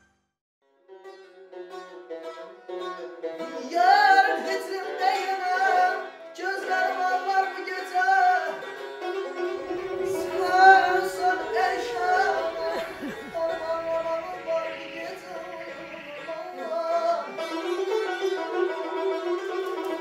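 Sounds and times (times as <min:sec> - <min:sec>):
plucked lute melody: 0:00.9 - 0:20.0
person singing ornamented lines: 0:03.6 - 0:18.4.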